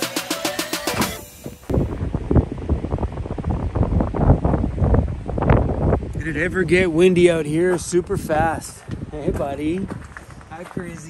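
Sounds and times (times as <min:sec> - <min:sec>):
background music with drum beat: 0:00.0 - 0:01.5
wind buffeting microphone: 0:01.4 - 0:11.0.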